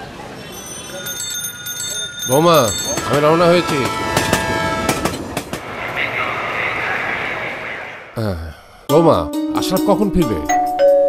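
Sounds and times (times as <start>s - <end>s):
train running noise: 0.0s - 8.1s
wheels clicking over rail joints: 0.6s - 5.6s.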